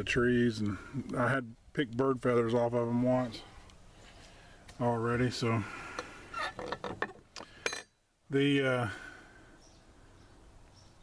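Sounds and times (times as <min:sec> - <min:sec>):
bird chirps: 0:09.5 - 0:11.0.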